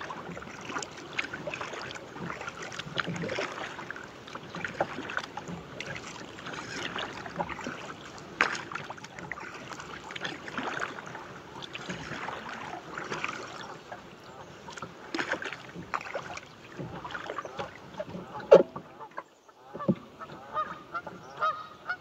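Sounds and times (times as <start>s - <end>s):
water splashing against kayak: 0.0s - 22.0s.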